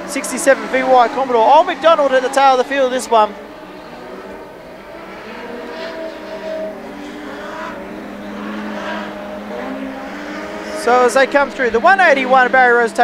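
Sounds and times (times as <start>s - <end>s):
race car engines running hard: 0.0s - 13.0s.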